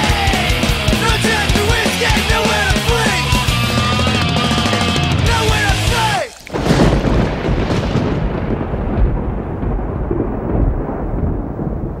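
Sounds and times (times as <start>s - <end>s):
thunder rumbling: 6.4s - 12.0s.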